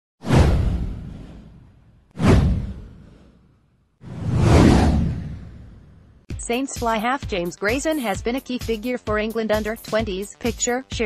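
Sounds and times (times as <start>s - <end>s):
deep boom: 0.2s - 3.2s
whoosh sound effect: 0.2s - 6.2s.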